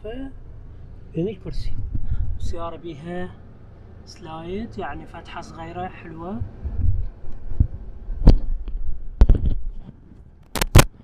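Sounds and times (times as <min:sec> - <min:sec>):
low in-car rumble: 0:00.0 - 0:11.0.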